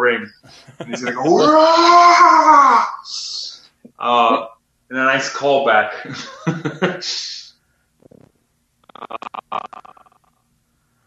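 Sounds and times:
man laughing: 0.5s - 1.7s, 5.9s - 7.4s
low vocal sound: 0.5s - 2.0s.

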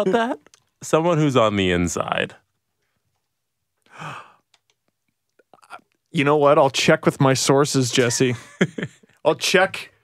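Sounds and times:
person sighing: 3.9s - 4.4s
faint clicks: 4.4s - 6.1s.

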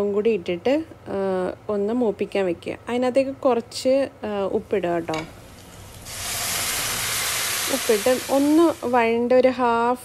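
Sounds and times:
shallots sizzling in oil: 5.0s - 9.2s
loud steady sizzle of beef: 5.3s - 9.1s.

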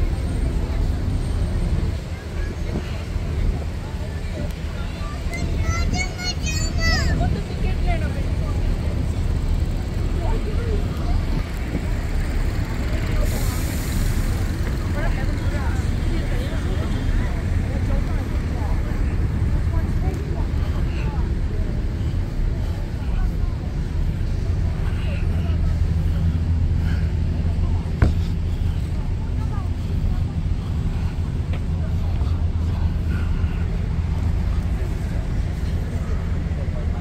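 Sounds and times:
passers-by talking: 0.0s - 37.0s
road traffic rumble: 0.0s - 37.0s.

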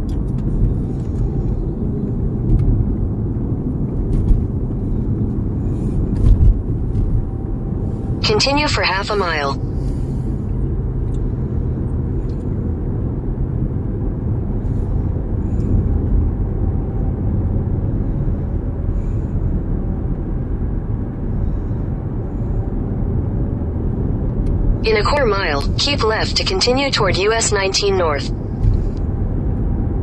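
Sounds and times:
car driving at highway speed: 0.0s - 8.2s, 9.7s - 24.9s.

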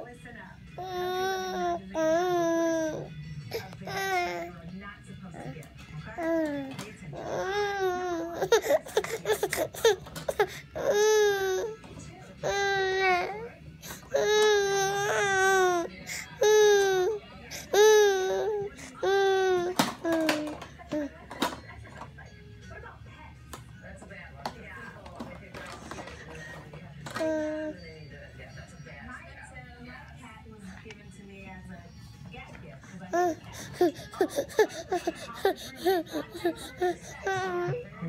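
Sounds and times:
baby crying: 6.2s - 11.8s, 33.1s - 37.8s.

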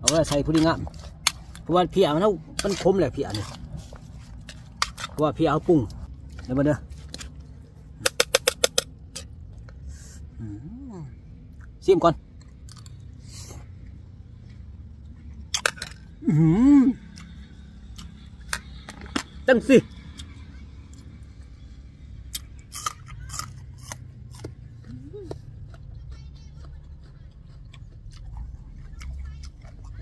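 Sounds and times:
mouth chewing: 0.0s - 9.9s, 22.3s - 30.0s
man speaking: 1.7s - 3.6s, 5.2s - 6.8s.

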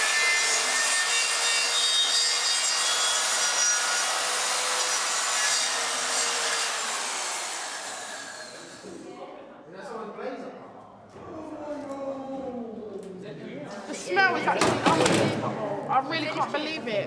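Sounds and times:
circular saw cutting carcass: 0.0s - 8.9s.

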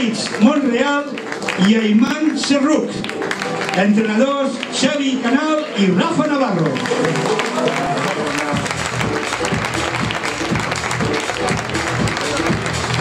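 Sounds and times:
group applauding: 0.0s - 13.0s
music with steady beat: 6.8s - 13.0s.

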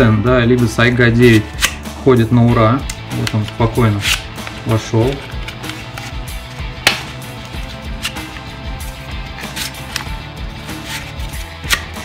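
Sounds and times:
background music with steady beat: 0.0s - 12.0s
magazine scraping in fabric pouch: 3.8s - 8.6s, 9.2s - 12.0s.

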